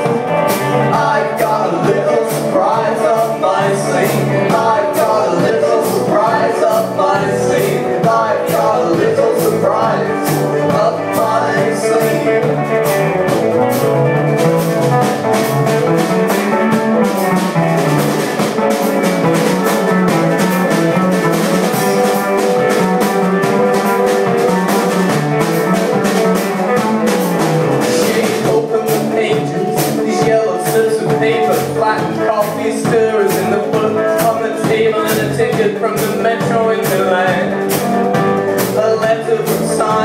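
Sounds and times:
bass guitar line: 0.0s - 40.0s
drum kit beat: 0.0s - 40.0s
electric guitar: 0.0s - 40.0s.

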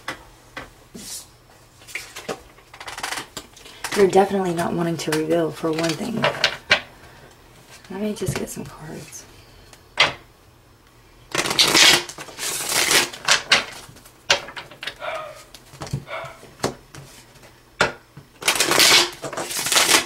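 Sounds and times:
cards riffling: 11.3s - 14.1s, 18.4s - 20.0s.

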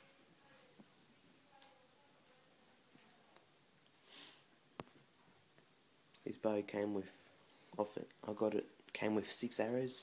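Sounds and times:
short sniff: 4.0s - 4.5s.

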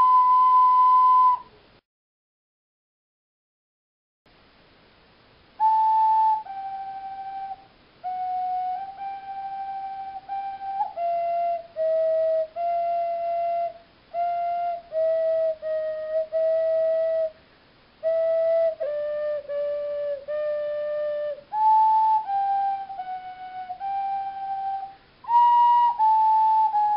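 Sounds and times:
ocarina melody: 0.0s - 1.6s, 5.6s - 17.4s, 18.0s - 26.9s.

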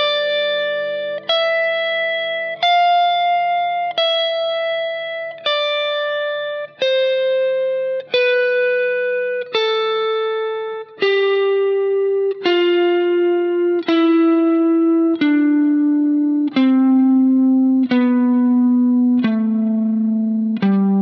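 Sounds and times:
electric guitar playing a scale: 0.0s - 21.0s.

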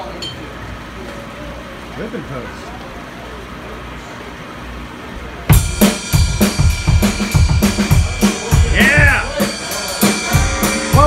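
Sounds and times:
murmur of voices: 0.0s - 11.0s
drum kit cymbal and snare hits: 5.5s - 11.0s
live rock band playing: 5.5s - 11.0s.

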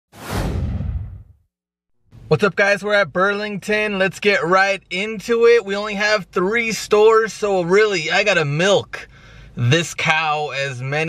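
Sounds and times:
whoosh: 0.1s - 1.4s.

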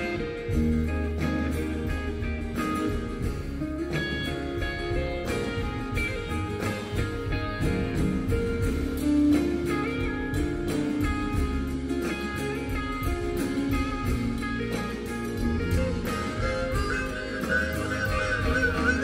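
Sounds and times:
bass guitar: 0.0s - 19.0s
guitars: 0.0s - 19.0s
steady drum beat: 0.0s - 19.0s
wavering lead guitar line: 0.0s - 19.0s.

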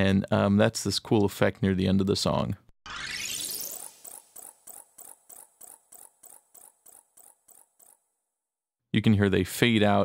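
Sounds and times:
guitar fret squeaks: 3.8s - 8.0s.

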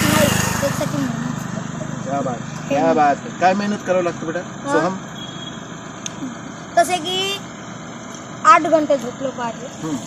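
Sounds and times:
conversational speech: 0.0s - 5.1s
outdoor background noise: 0.0s - 10.0s.

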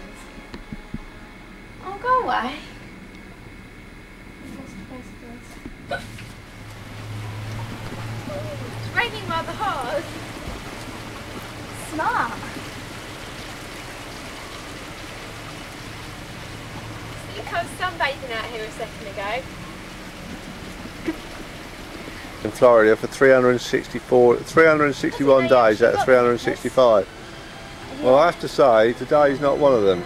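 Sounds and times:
rain hiss: 0.0s - 30.0s
steady low hum: 0.0s - 30.0s.

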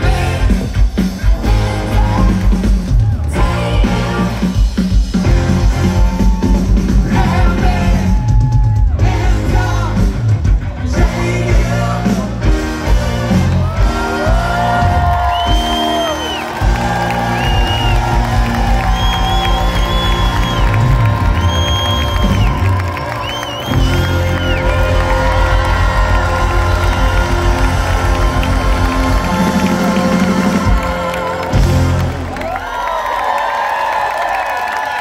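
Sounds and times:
large crowd cheering: 0.0s - 11.0s, 11.8s - 35.0s
heavy pulsing bass: 0.0s - 15.4s, 16.5s - 32.6s
live rock band playing: 0.0s - 32.6s.

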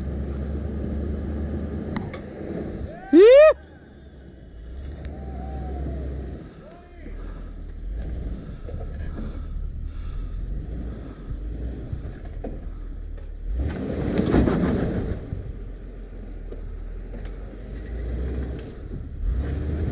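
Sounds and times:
engine running at low speed: 0.0s - 19.9s.

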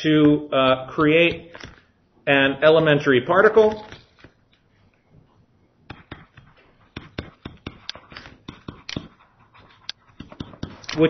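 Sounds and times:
stylus tapping on screen: 5.9s - 11.0s.

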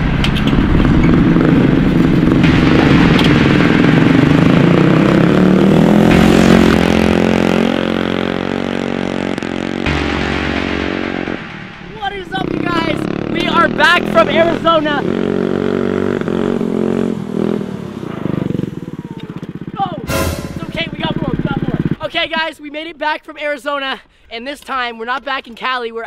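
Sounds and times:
scooter engine revving: 0.0s - 11.6s, 12.4s - 20.0s.

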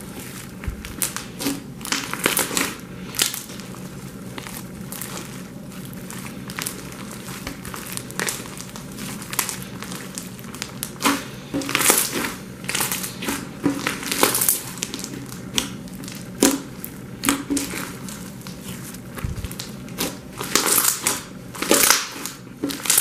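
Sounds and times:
slime squeezed with wet crackles: 0.1s - 23.0s.

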